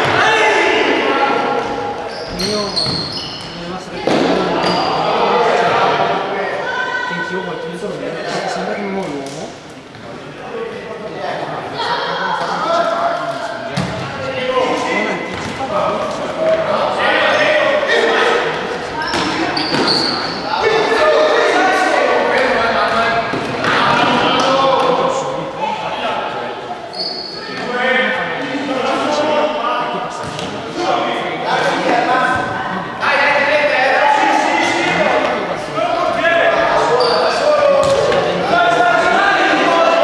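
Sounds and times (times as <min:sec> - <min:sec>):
players calling out: 0:00.0 - 0:40.0
shoes squeaking on wooden floor: 0:01.6 - 0:05.0, 0:18.8 - 0:20.4, 0:26.9 - 0:27.7.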